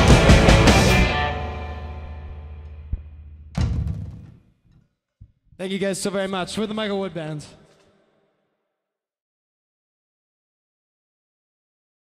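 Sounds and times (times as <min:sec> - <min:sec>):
rock band chord ringing: 0:00.0 - 0:02.8
loud drum hit: 0:03.5 - 0:04.4.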